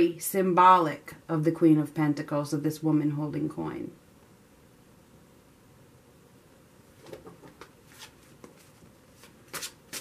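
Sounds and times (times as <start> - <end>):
cards shuffling: 7.0 - 10.0
cards slapping: 7.1 - 10.0.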